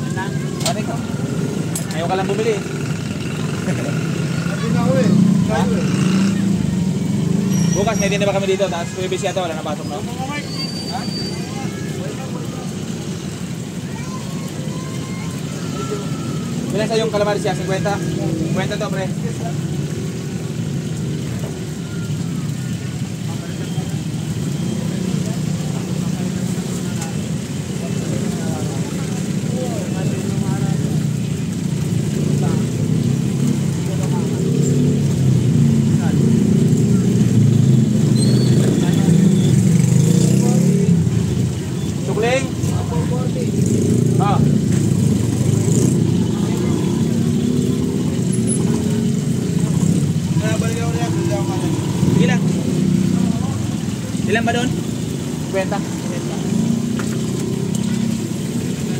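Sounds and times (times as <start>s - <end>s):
people talking: 0.0s - 20.3s, 21.0s - 44.8s, 45.4s - 58.9s.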